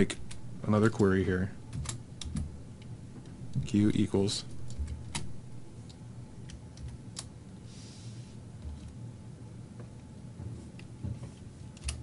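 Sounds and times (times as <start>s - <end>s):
computer keyboard keystrokes: 1.7s - 2.9s, 5.9s - 7.3s, 11.8s - 12.0s.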